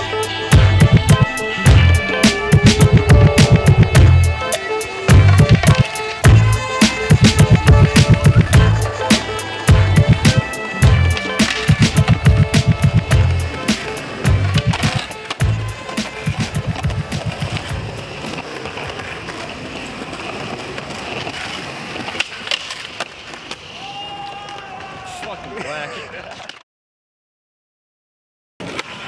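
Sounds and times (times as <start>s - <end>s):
music with heavy bass beat: 0.0s - 17.8s
skateboard wheels rolling on concrete: 0.0s - 26.6s, 28.6s - 29.0s
skateboard clacks: 0.6s - 25.0s.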